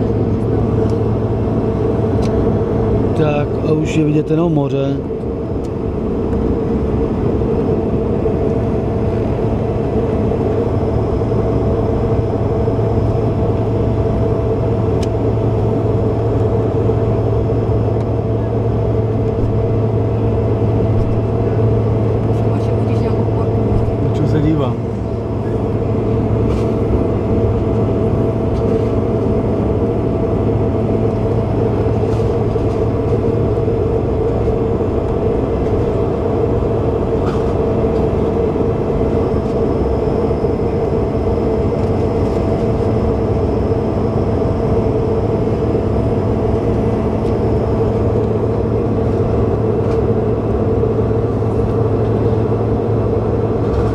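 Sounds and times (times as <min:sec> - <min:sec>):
aircraft engine hum: 0:00.0 - 0:53.9.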